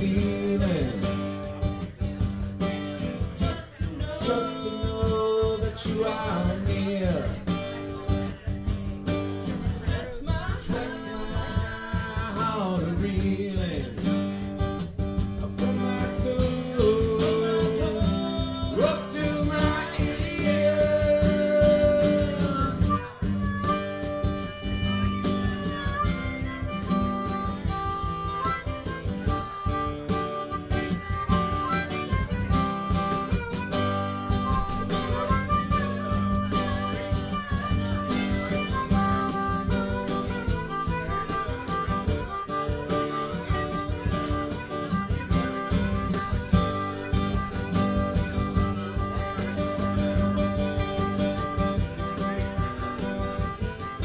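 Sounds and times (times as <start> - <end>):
guitar: 0.0 - 54.0
harmonica lead: 0.0 - 54.0
steady drum beat: 0.0 - 54.0.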